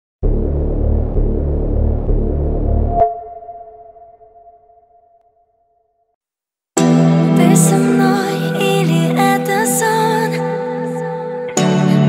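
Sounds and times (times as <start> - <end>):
low pulsing synth drone: 0.2 - 5.6
ringing tone: 2.9 - 5.8.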